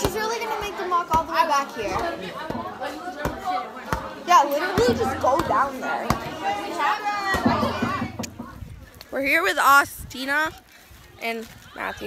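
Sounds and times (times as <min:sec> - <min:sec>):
teenagers chattering: 0:00.0 - 0:12.0.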